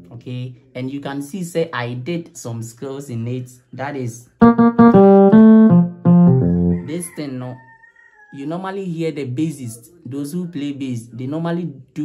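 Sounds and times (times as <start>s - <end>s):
electric piano bass line: 4.4s - 6.9s.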